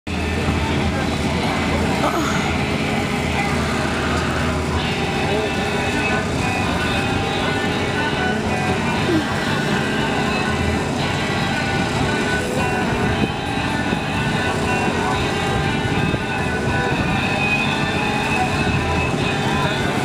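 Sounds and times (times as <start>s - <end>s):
car engines running: 0.1s - 20.0s
music: 0.1s - 20.0s
people talking: 0.1s - 20.0s.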